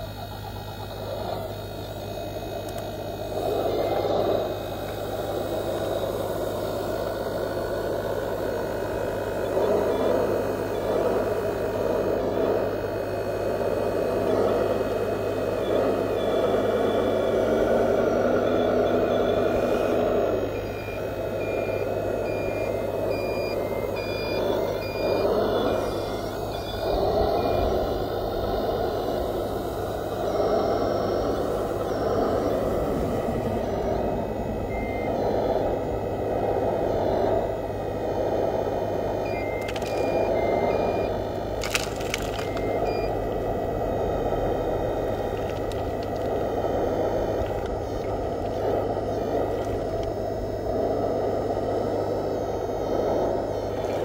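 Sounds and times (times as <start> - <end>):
electric motor whine: 0.0 - 54.0.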